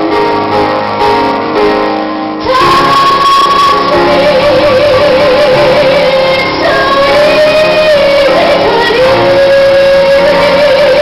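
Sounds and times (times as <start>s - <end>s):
instrumental accompaniment: 0.0s - 11.0s
woman singing: 2.4s - 11.0s.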